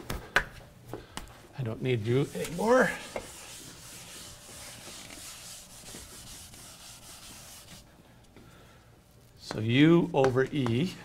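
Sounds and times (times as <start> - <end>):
eraser scrubbing a chalkboard: 1.9 - 7.9.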